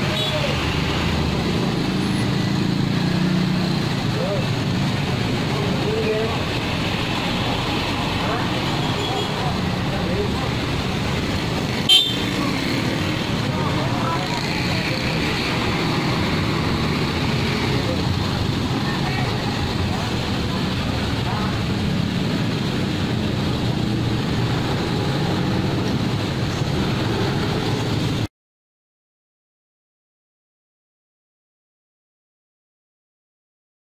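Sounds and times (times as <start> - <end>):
traffic noise: 0.0 - 28.3.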